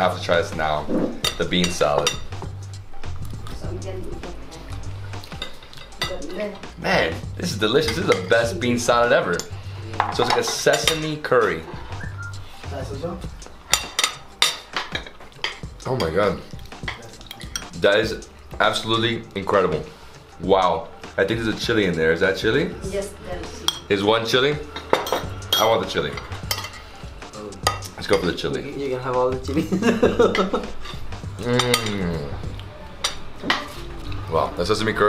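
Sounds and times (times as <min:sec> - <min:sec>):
cutlery clinking on plates: 0:01.2 - 0:02.5, 0:05.2 - 0:06.4, 0:09.3 - 0:11.6, 0:13.7 - 0:16.2, 0:16.8 - 0:17.8, 0:23.6 - 0:24.0, 0:24.7 - 0:26.9, 0:30.2 - 0:32.0, 0:33.0 - 0:33.8.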